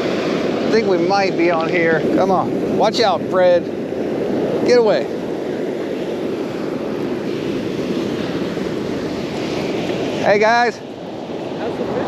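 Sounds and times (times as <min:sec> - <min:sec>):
surf breaking on shore: 0:00.0 - 0:12.0
wind on microphone: 0:00.0 - 0:12.0.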